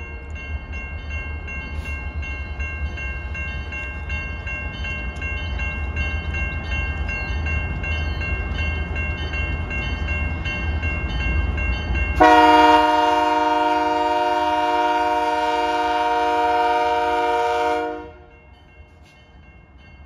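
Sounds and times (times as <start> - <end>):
diesel locomotives rumbling: 0.0 - 20.0
locomotive horn blast: 12.2 - 18.3.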